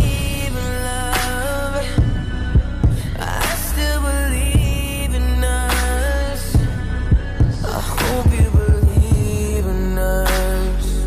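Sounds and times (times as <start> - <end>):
slow instrumental music: 0.0 - 11.0.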